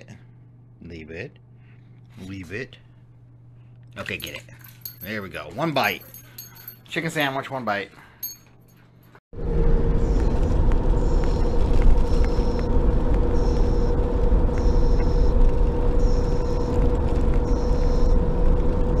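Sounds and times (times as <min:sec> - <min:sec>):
constant hum: 0:00.0 - 0:19.0
road rumble inside car: 0:09.4 - 0:19.0.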